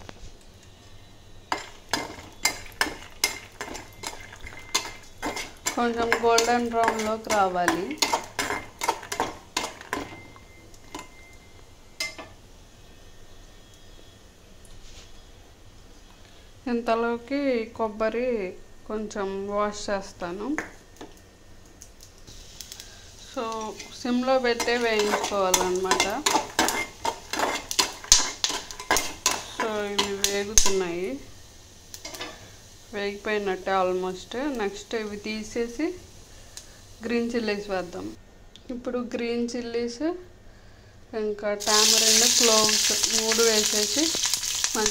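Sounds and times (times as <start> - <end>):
metal spoon clinking on metal pan: 1.5 - 11.2, 12.0 - 12.3, 24.5 - 30.8.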